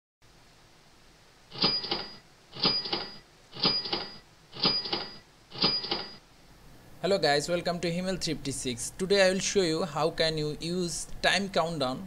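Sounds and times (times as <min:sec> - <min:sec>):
timer clicks with ringing tone: 0:01.5 - 0:06.2.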